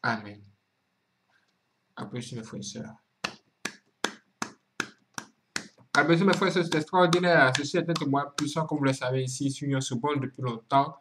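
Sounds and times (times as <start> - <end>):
hands clapping: 3.2 - 8.7.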